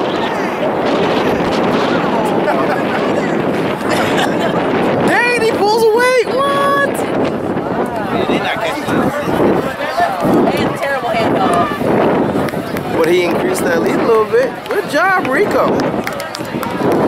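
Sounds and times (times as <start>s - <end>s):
spectators cheering and shouting: 0.0s - 17.0s.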